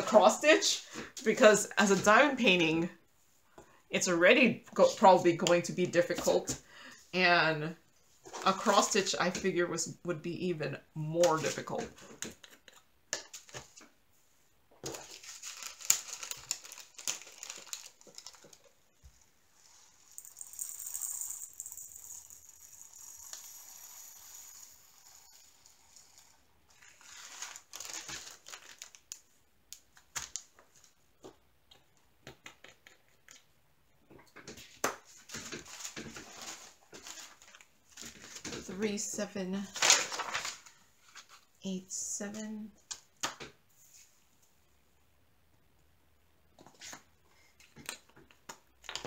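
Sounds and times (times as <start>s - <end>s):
plastic bag crinkling: 14.8s - 18.8s, 26.8s - 29.3s
beads hissing through plastic funnel: 19.6s - 27.0s.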